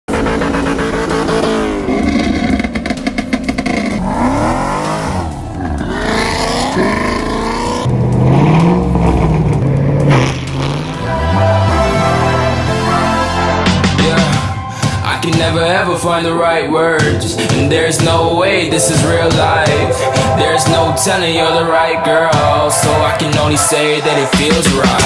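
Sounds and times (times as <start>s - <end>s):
car engines revving hard: 0.1s - 25.0s.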